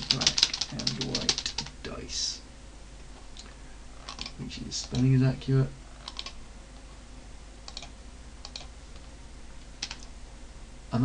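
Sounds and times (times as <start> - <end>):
computer keyboard keystrokes: 0.0 - 1.7, 4.1 - 5.1, 6.0 - 6.4, 7.7 - 8.7, 9.8 - 10.1
faint low hum: 0.0 - 11.0.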